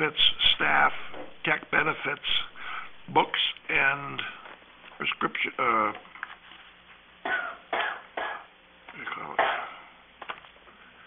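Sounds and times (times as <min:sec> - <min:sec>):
person coughing: 0:07.2 - 0:08.5, 0:09.2 - 0:09.9
person clearing throat: 0:07.2 - 0:09.9.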